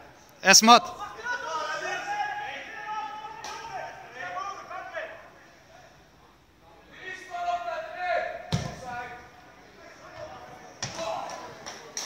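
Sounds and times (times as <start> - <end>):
players shouting: 0.4 - 6.1, 6.9 - 11.9
football kicked thud: 8.5 - 8.9.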